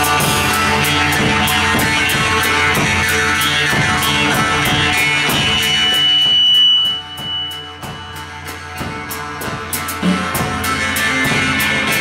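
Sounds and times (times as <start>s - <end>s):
amplified jaw harps: 0.0s - 9.4s
high whistling tone: 4.9s - 8.2s.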